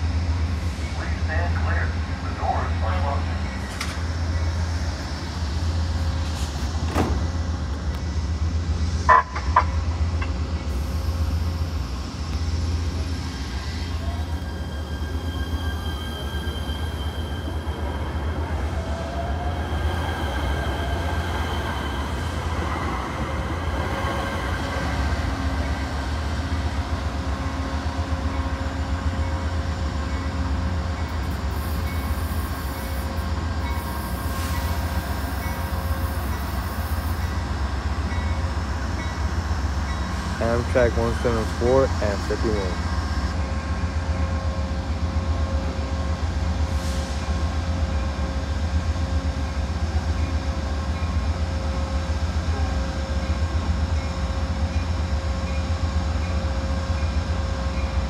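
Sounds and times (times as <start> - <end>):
faint train whine: 0.0 - 58.0
light rail train rumbling: 0.0 - 58.0.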